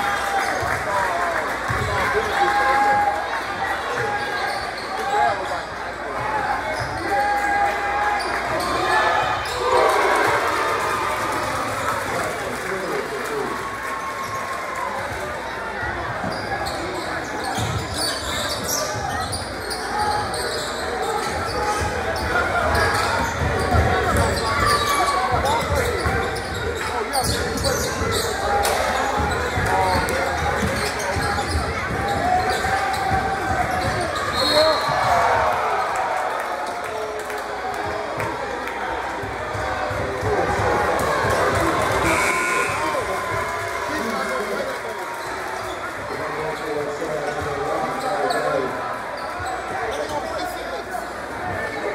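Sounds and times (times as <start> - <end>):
spectators shouting and talking: 0.0 - 51.9.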